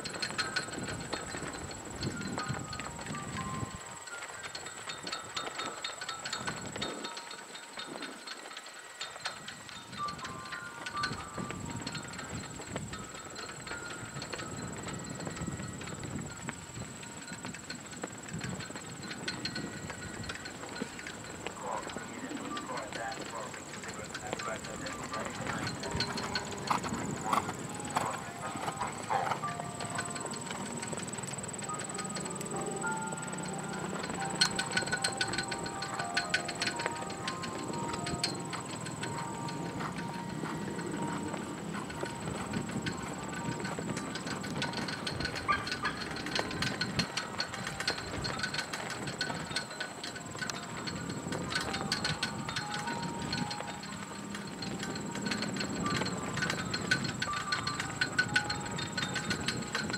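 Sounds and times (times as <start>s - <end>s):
steady high-pitched whine: 0.0s - 47.2s
horse hoofbeats: 0.0s - 59.9s
background voices: 21.4s - 31.1s.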